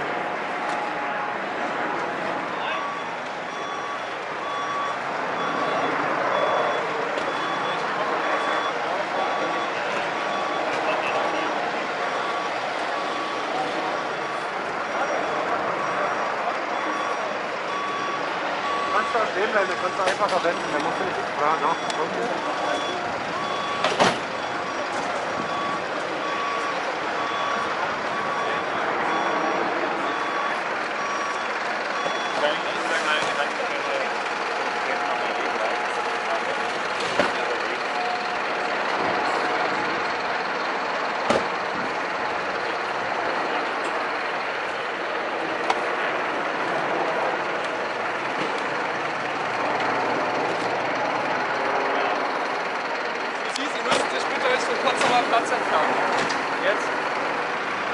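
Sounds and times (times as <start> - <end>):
crowd voices: 0.0 - 57.9
traffic: 0.0 - 57.9
vehicle reversing beeper: 2.2 - 57.9.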